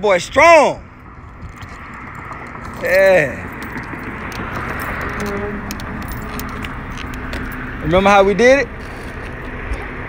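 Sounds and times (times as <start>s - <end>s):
low steady outdoor noise: 0.0s - 10.0s.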